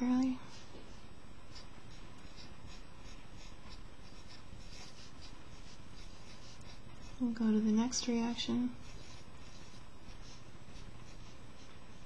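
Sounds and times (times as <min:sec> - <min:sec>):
marker pen scratching: 0:00.5 - 0:07.3, 0:08.8 - 0:12.0.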